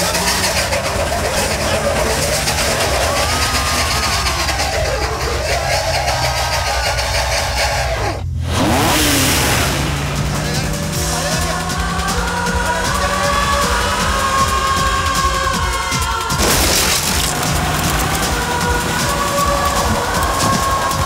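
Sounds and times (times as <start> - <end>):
man yelling: 0.0 - 6.4, 10.3 - 21.0
car engine revving: 0.0 - 21.0.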